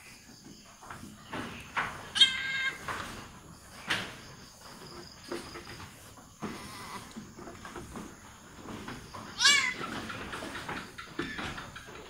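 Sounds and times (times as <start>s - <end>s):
goat bleating: 2.2s - 2.8s, 9.4s - 9.9s.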